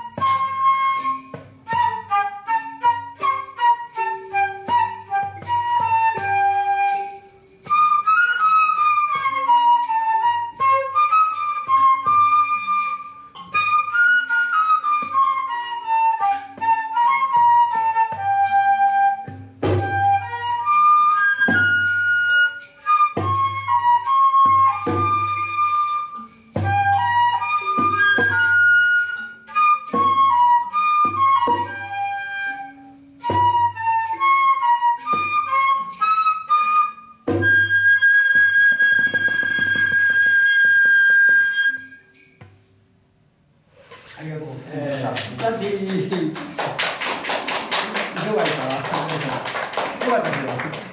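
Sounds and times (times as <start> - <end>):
flute melody: 0.0 - 42.6.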